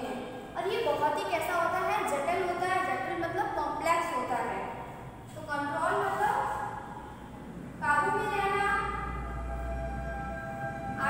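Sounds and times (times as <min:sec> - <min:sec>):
multi-tone horn blast: 0:09.0 - 0:11.0.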